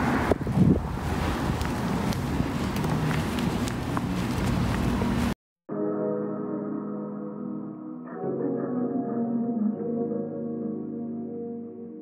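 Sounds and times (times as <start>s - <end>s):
wind buffeting microphone: 0.0s - 5.3s
footsteps on concrete: 1.5s - 5.4s.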